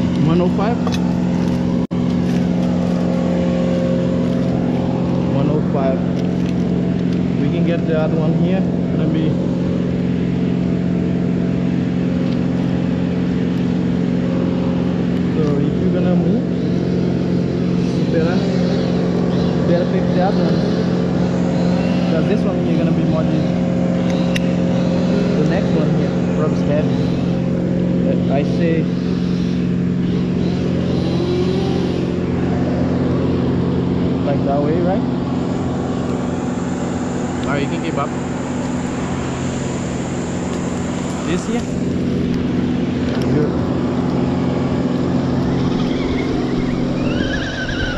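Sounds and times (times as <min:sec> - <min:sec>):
engine humming steadily: 0:00.0 - 0:47.9.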